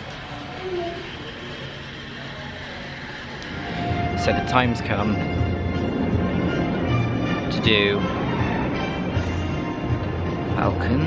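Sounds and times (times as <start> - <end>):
background music: 3.5 - 11.0.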